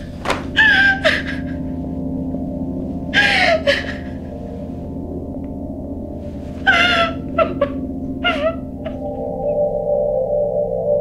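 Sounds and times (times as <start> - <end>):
held music drone: 0.0 - 11.0
woman sobbing: 0.6 - 1.9, 3.1 - 4.4, 6.6 - 9.2.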